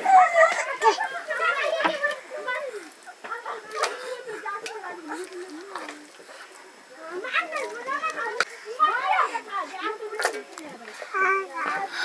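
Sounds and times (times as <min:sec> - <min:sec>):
children talking and chattering: 0:00.0 - 0:12.0.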